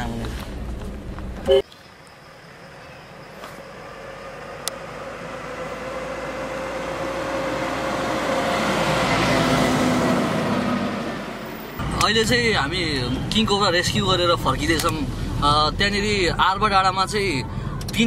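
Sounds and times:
pickup truck driving past: 3.9 - 11.8.

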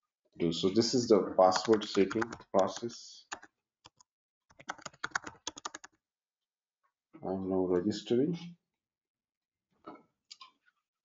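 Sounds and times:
typing on computer keyboard: 1.5 - 6.0.

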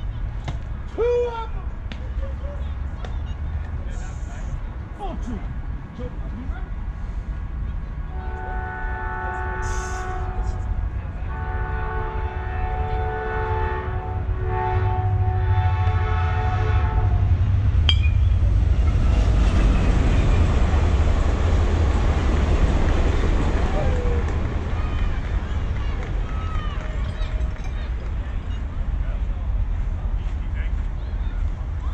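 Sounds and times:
multi-tone horn blasts: 8.1 - 17.4.

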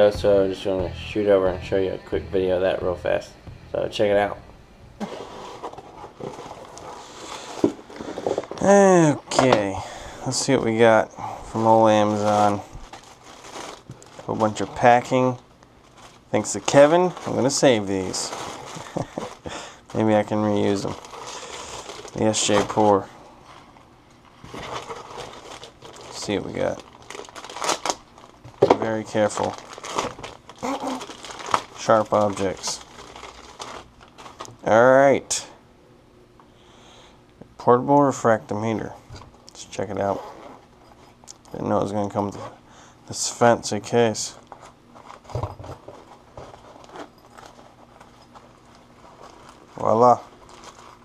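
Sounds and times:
plastic bag crinkling: 5.0 - 35.0, 44.1 - 51.0
fabric case rustling: 44.6 - 51.0.

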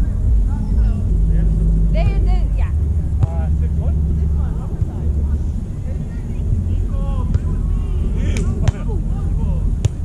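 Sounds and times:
unclear voices: 0.0 - 9.9
steady low rumble: 0.0 - 10.0.

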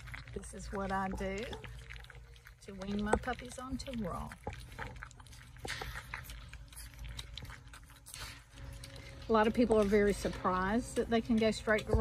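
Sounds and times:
puppies eating wet food: 0.0 - 12.0.

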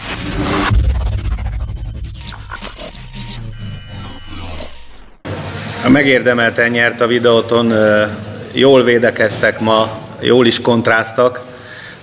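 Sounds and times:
glitchy clicks: 0.0 - 5.3
intro music sting: 0.0 - 5.8.

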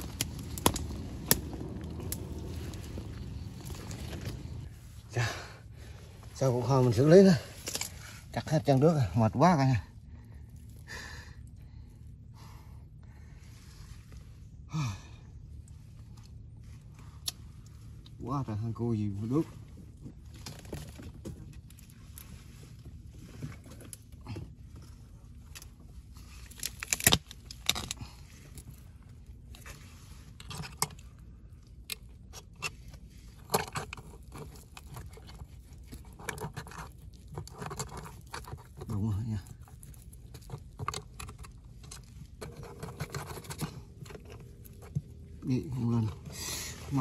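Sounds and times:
hook rod clicking and scraping: 39.6 - 45.0.

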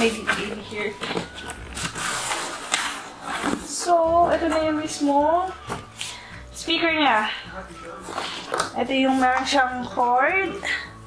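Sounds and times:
cardboard and plastic wrap rustling: 0.0 - 4.8.

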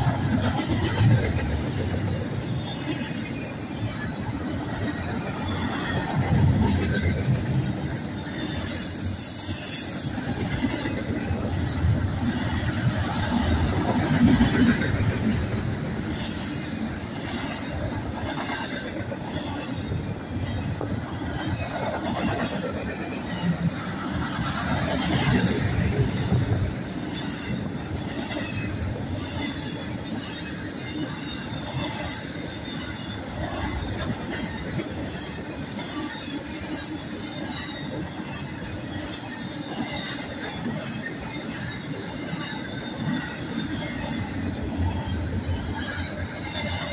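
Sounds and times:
train cars rumbling on rails: 0.0 - 46.9.

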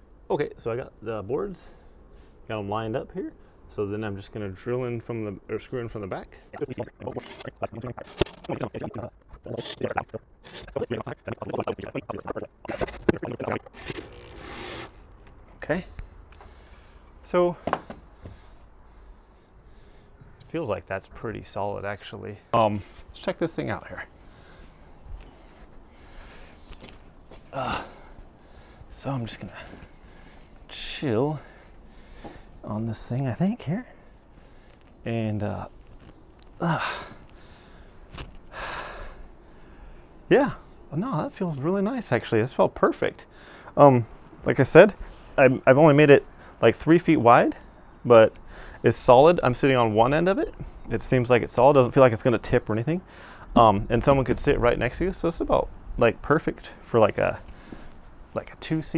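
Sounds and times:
electric drill driving screw: 13.8 - 15.0.

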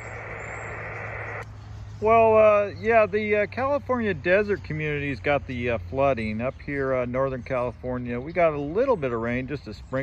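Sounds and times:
low hum: 0.0 - 2.0
muffled radio hiss: 0.0 - 2.8.

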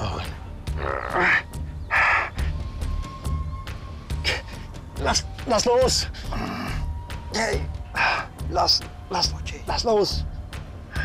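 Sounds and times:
music with low pulsing beat: 0.0 - 11.0.

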